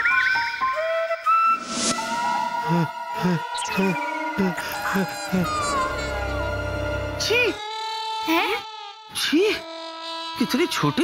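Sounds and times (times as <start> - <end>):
whistle-like musical tones: 0.0 - 2.7.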